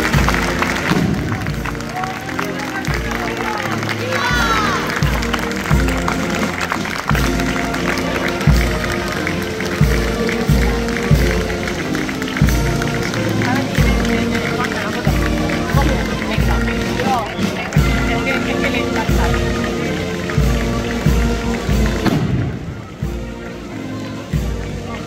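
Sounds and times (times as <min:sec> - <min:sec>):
band playing sustained chords: 0:00.0 - 0:25.0
crowd voices: 0:00.0 - 0:25.0.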